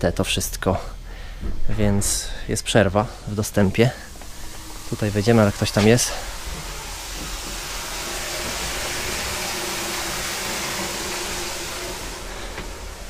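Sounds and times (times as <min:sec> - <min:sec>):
faint hum: 0:00.0 - 0:13.0
electric appliance hissing rush: 0:00.2 - 0:13.0.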